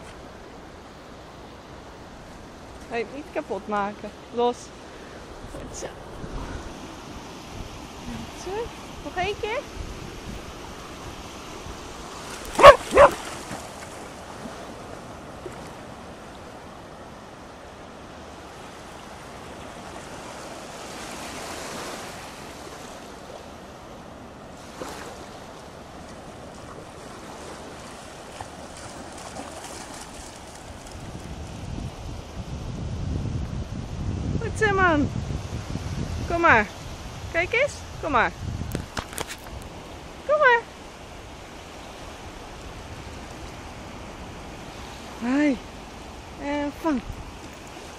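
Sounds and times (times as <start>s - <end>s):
surf washing on beach: 0.0s - 47.9s
wind buffeting microphone: 2.9s - 15.0s, 26.3s - 40.5s
dog barking: 12.6s - 13.2s.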